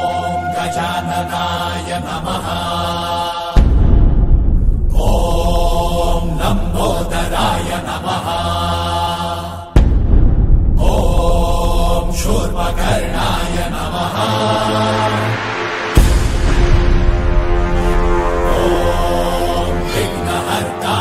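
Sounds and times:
devotional chanting: 0.0 - 4.1, 4.7 - 9.9, 10.8 - 21.0.

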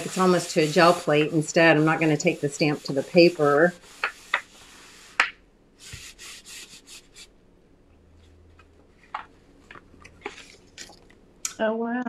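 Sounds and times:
hands brushing paper: 0.0 - 7.3, 8.2 - 11.2.

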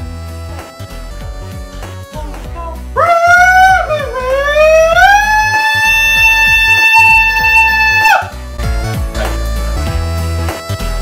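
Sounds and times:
background music: 0.0 - 11.0
person singing a long high note: 3.0 - 8.2.

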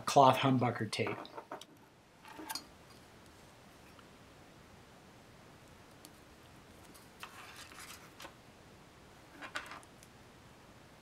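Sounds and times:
tape rustling by hand: 5.9 - 8.4.

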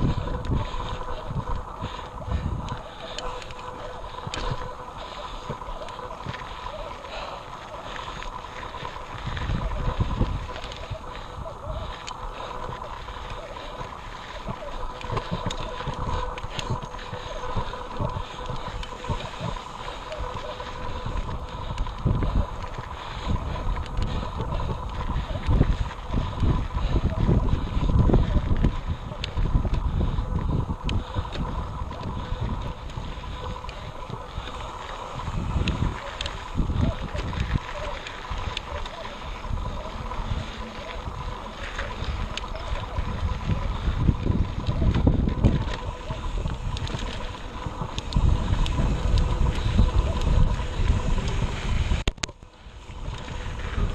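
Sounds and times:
bike knocking and rattling: 0.0 - 53.9
wind buffeting microphone: 0.0 - 53.9.

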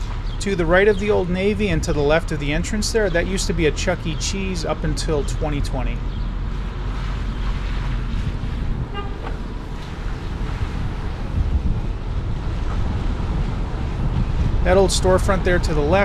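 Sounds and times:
car driving slowly: 0.0 - 16.0
wind noise on microphone: 0.0 - 16.0.

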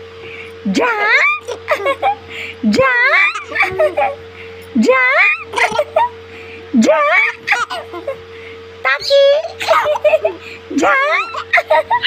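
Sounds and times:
steady low hum: 0.0 - 12.0
baby squealing laughter: 0.8 - 2.2, 3.0 - 4.2, 5.1 - 6.1, 7.0 - 8.2, 9.4 - 12.0.

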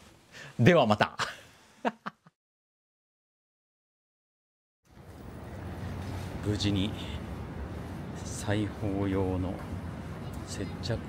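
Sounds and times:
man speaking: 0.6 - 1.3, 6.4 - 7.4, 8.2 - 9.8, 10.4 - 11.0.

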